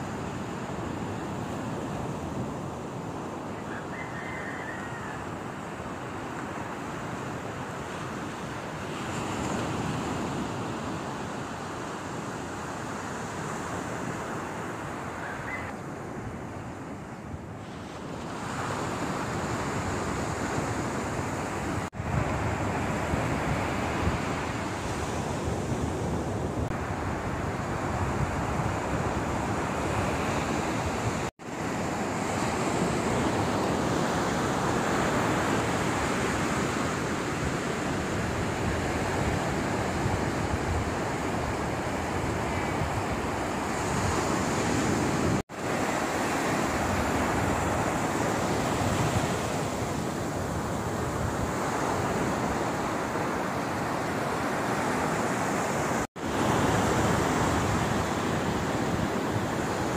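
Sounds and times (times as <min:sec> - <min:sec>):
ocean surf breaking on beach: 0:00.0 - 0:59.9
wind on microphone: 0:15.1 - 0:59.9.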